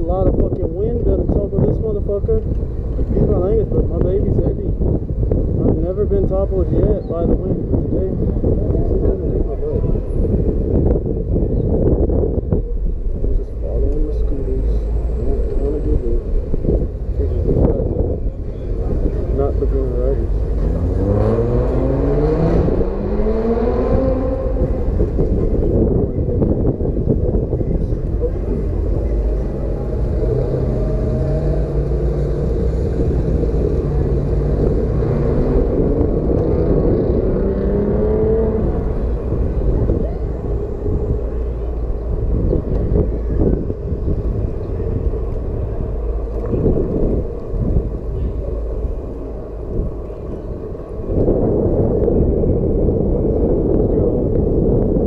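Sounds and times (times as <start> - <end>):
wind rumbling on microphone: 0.0 - 55.0
motorbike engine accelerating: 19.0 - 26.7, 28.6 - 55.0.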